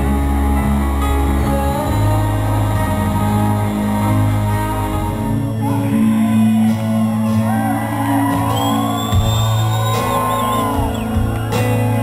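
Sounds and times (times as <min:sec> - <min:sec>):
crowd cheering and whooping: 0:05.4 - 0:12.0
shrill whistle: 0:08.5 - 0:11.2.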